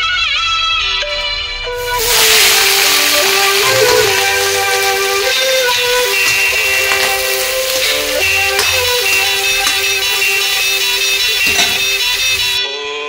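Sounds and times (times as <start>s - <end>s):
background music: 1.0s - 12.6s
onions sizzling in hot oil: 1.8s - 12.6s.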